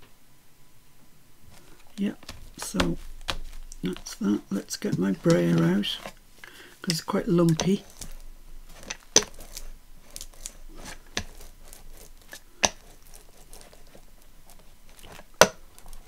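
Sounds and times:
roller crackling over paper: 1.5 - 16.0.

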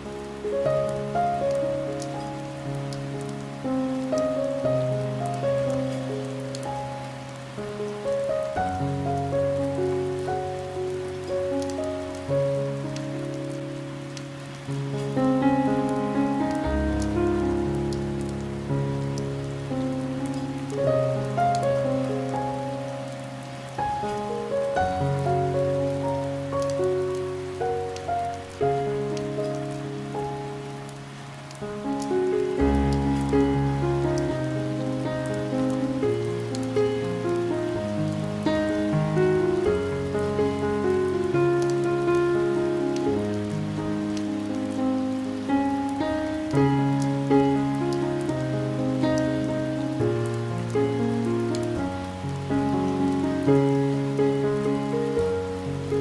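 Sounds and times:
gentle piano music: 0.0 - 56.0
rain on window glass: 0.0 - 56.0.

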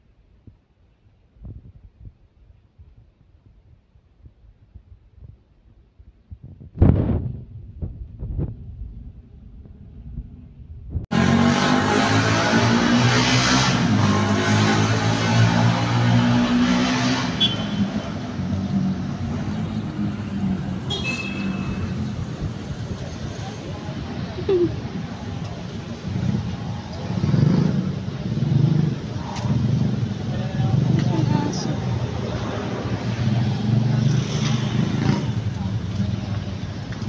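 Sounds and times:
city street traffic: 2.1 - 37.0.

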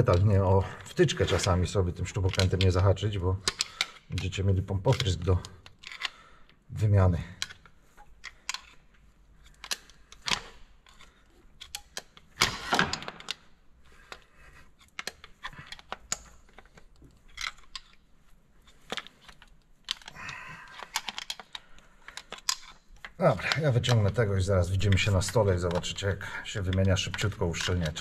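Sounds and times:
metallic clicks of hand tools: 18.8 - 28.0.

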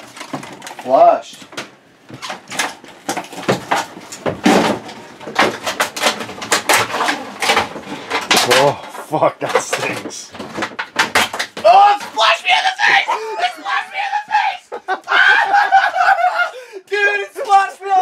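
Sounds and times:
knocks and clatter: 0.0 - 13.0.

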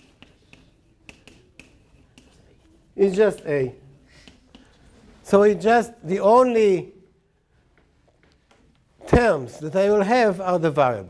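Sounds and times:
chalk tapping on blackboard: 0.0 - 5.0.

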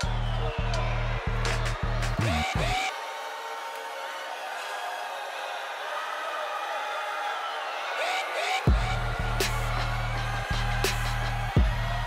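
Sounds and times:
competition hall ambience: 0.0 - 12.0.

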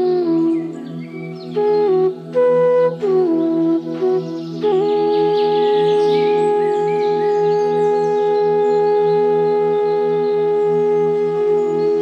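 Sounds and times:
bird chirps: 0.0 - 12.0
flute long note: 0.0 - 12.0.

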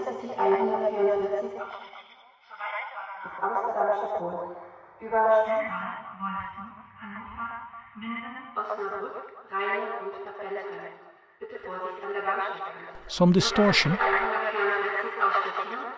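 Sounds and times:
speech through loudspeaker: 11.6 - 15.9.

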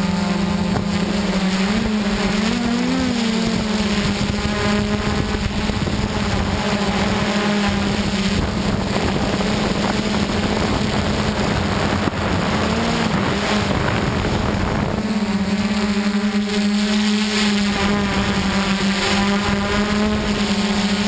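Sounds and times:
rushing wind noise: 0.0 - 16.6, 17.5 - 21.0
drone motors humming: 0.0 - 21.0.

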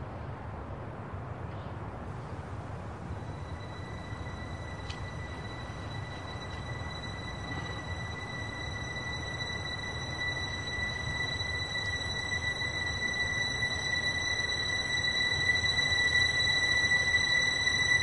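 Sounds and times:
high-pitched tone: 3.2 - 18.0.

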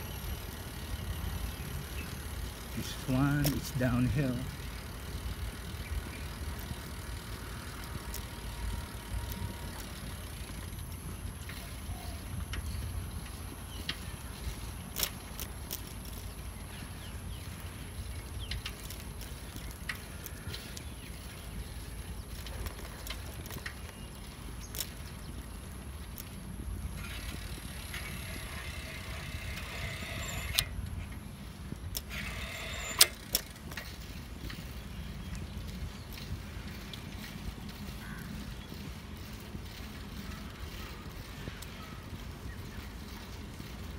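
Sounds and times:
bicycle clicks and rattles: 0.0 - 43.9
wind and tyre rumble: 0.0 - 43.9.

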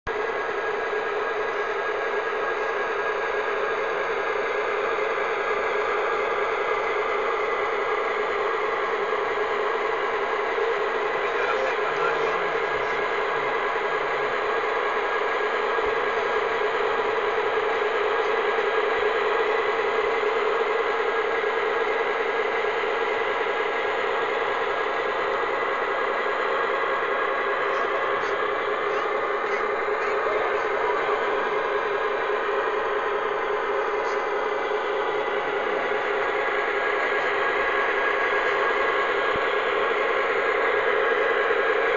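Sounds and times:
model locomotive humming: 0.1 - 41.9.

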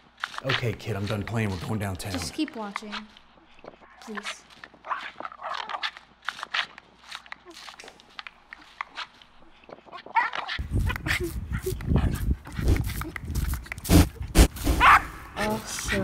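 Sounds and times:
small dog barking and whining: 14.8 - 15.2.

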